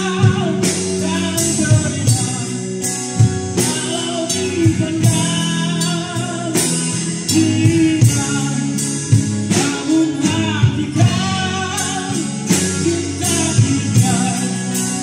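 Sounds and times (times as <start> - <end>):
bass guitar: 0.0 - 15.0
drum kit: 0.0 - 15.0
electric guitar: 0.0 - 15.0
man singing into a microphone: 0.0 - 15.0
strummed acoustic guitar: 0.0 - 15.0.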